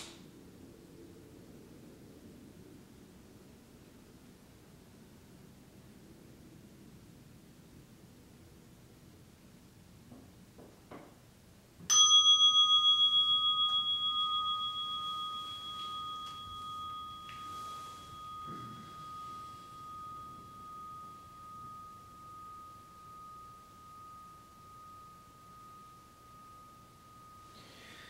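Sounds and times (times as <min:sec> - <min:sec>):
meditation bell ringing: 0:11.9 - 0:28.0.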